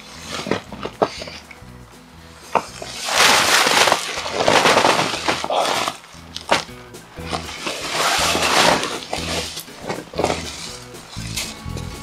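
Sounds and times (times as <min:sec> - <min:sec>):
background music with bass line: 0:00.0 - 0:12.0
nylon fabric rustling: 0:02.8 - 0:10.9.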